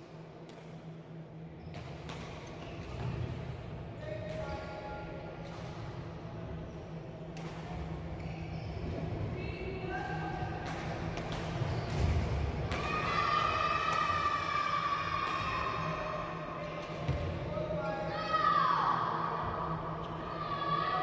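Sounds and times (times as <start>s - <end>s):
racket hitting shuttlecock: 10.6s - 14.2s.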